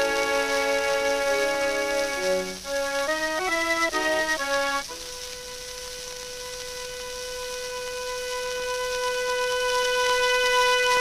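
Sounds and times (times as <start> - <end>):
accordion holding long note: 0.0 - 5.8, 6.4 - 11.0
record surface hiss: 0.0 - 11.0.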